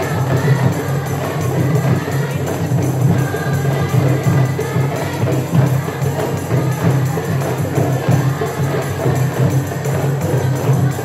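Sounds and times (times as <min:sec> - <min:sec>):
deeper seated drums: 0:00.0 - 0:11.0
hand drums: 0:00.0 - 0:11.0
women singing together: 0:00.0 - 0:11.0.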